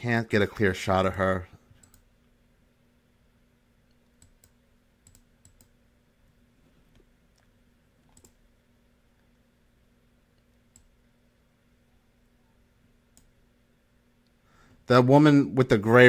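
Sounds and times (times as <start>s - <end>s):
faint electrical hum: 0.0s - 16.0s
computer mouse clicks: 1.7s - 2.1s, 3.9s - 5.8s, 6.9s - 8.4s, 10.3s - 10.9s, 13.1s - 13.3s.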